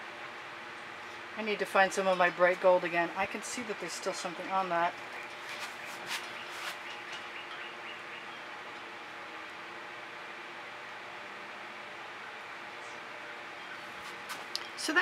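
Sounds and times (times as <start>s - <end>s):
faint hum: 0.0s - 15.0s.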